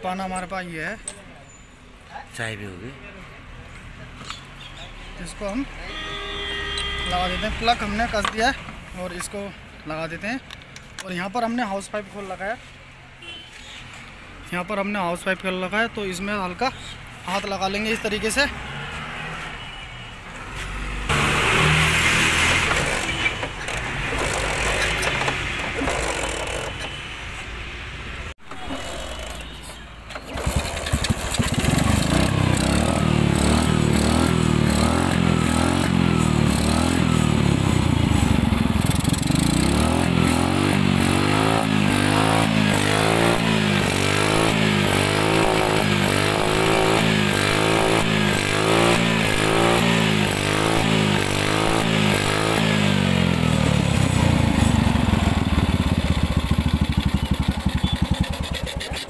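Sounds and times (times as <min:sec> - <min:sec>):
scooter engine starting and running: 0:21.1 - 0:27.0, 0:28.4 - 0:59.0.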